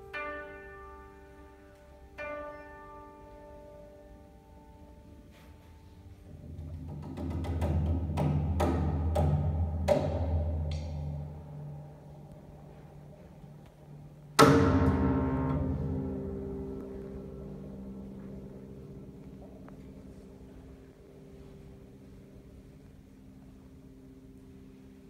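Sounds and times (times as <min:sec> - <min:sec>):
sharp piano strikes: 0:00.0 - 0:25.0
loud piano chord: 0:10.2 - 0:25.0
low piano tremolo: 0:11.2 - 0:25.0.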